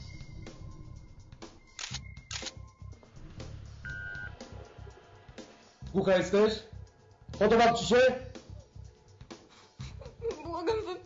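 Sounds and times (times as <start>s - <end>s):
background music: 0.0s - 11.0s
camera shutter clicking: 1.8s - 2.6s.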